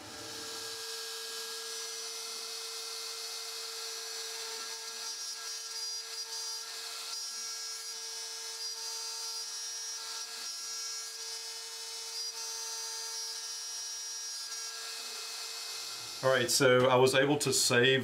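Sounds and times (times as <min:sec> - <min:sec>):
router spindle high whine: 0:00.0 - 0:07.2.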